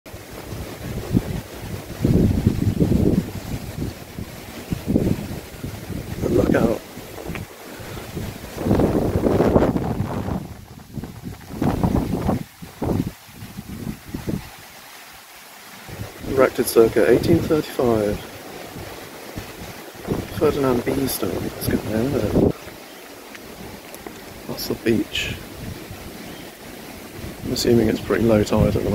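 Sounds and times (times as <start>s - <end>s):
wind buffeting microphone: 0.1s - 28.9s.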